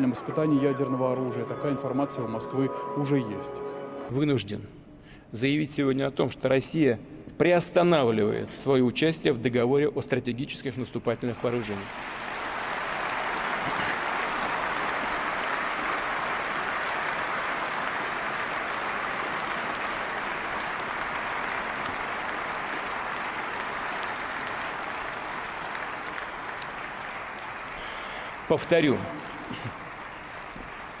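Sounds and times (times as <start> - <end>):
large audience applauding: 11.2 - 31.0.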